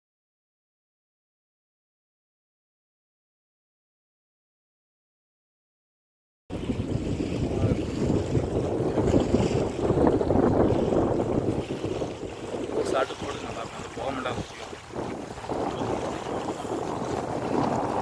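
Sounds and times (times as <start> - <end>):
water lapping at shore: 6.5 - 18.0
wind buffeting microphone: 6.5 - 18.0.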